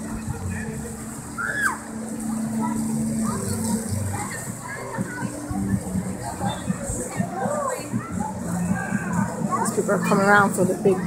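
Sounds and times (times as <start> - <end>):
background of many voices: 0.0 - 11.0
children calling and shouting: 0.0 - 11.0.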